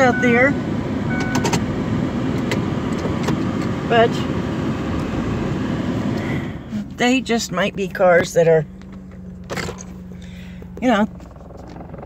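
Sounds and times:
van engine rumble inside cabin: 0.0 - 12.0.

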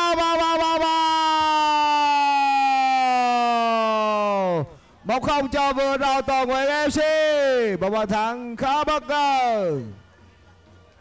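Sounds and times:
man shouting goal: 0.0 - 9.9.

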